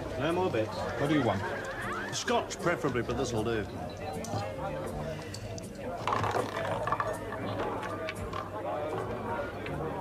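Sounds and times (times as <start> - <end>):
party chatter: 0.0 - 10.0
ball rattling and clicking: 6.0 - 8.6.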